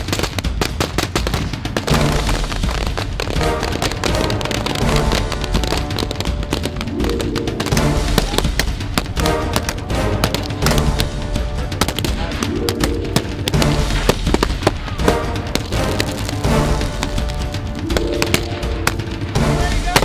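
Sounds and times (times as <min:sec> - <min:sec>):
rapid rifle gunfire: 0:00.0 - 0:12.5.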